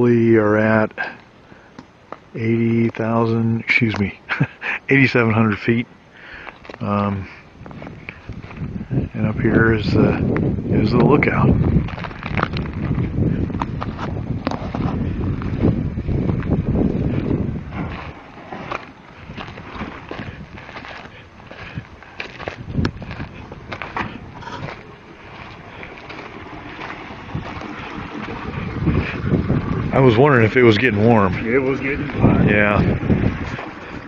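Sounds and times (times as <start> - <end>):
wind buffeting microphone: 7.0 - 34.0.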